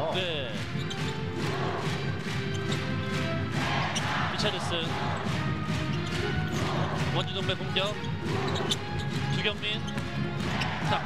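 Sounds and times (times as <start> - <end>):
arena music playing: 0.0 - 11.0.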